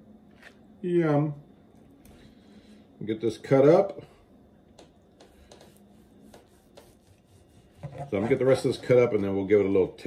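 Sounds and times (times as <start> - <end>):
knife sawing through meat: 5.9 - 8.6.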